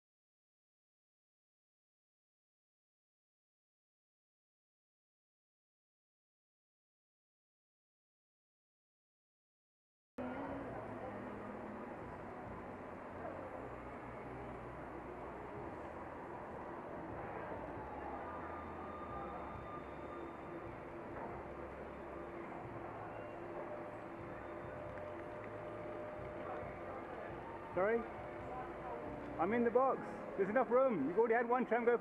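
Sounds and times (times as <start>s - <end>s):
street traffic: 10.2s - 30.5s.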